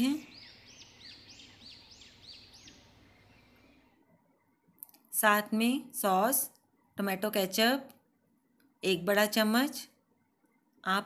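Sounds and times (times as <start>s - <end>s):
bird chirping: 0.0s - 4.8s.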